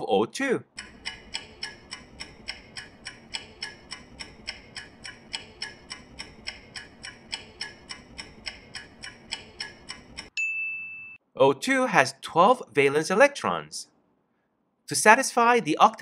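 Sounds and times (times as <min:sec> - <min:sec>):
countdown timer ticking: 0:00.7 - 0:10.4.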